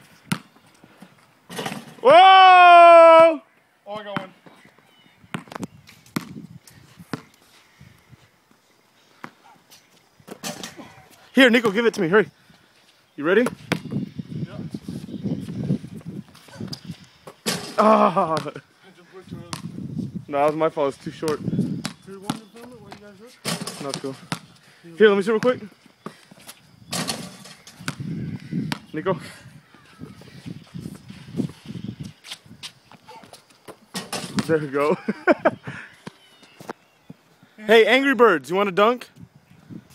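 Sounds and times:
basketball bouncing on concrete: 0:00.3 - 0:00.5, 0:05.3 - 0:06.4, 0:13.4 - 0:14.0, 0:19.5 - 0:19.7, 0:21.2 - 0:24.5, 0:27.0 - 0:28.1, 0:28.7 - 0:28.9, 0:33.9 - 0:34.6.

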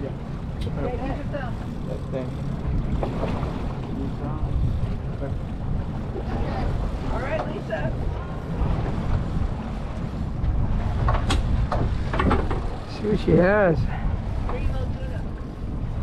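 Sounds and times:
boat engine rumbling: 0:00.0 - 0:16.0
wind buffeting microphone: 0:00.0 - 0:16.0.

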